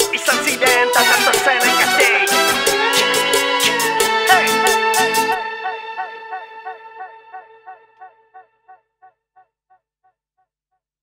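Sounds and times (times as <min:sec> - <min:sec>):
echoing musical note: 0:01.8 - 0:08.4.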